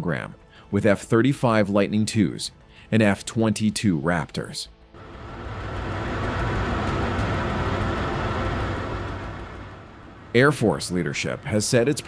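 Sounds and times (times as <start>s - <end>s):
jet aircraft rumble and hiss: 5.0s - 12.0s.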